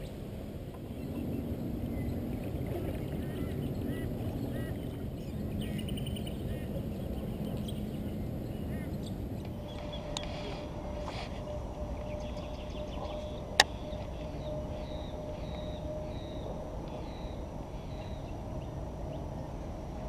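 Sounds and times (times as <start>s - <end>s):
steady low rumble: 0.0s - 20.0s
birds chirping: 0.8s - 10.6s, 11.5s - 19.3s.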